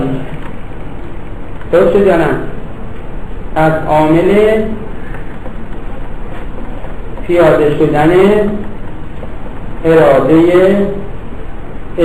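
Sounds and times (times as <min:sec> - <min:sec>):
background hiss and rumble: 0:00.0 - 0:12.0.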